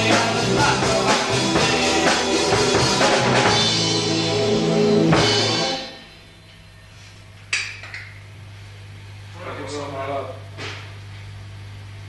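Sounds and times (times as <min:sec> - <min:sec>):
rock band final hit: 0:00.0 - 0:06.1.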